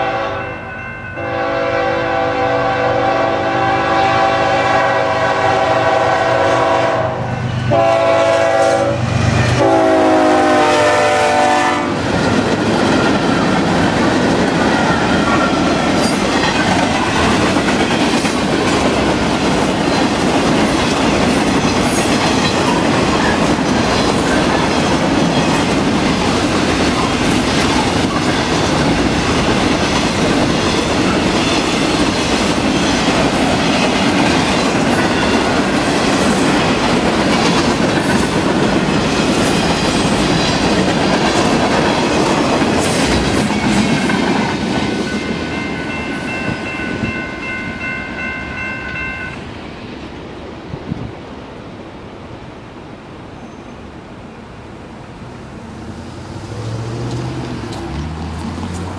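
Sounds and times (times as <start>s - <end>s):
freight train wheels on rails: 0.0s - 58.9s
wheels clickety-clack over track: 11.6s - 48.1s, 56.3s - 58.9s.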